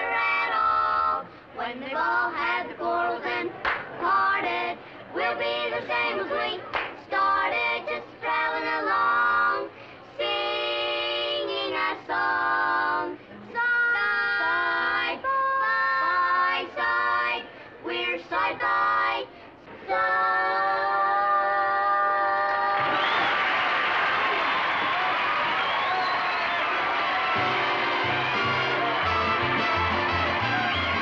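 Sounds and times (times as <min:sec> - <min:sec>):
boys singing close harmony: 0:00.0 - 0:23.0
applause and cheering: 0:22.5 - 0:31.0.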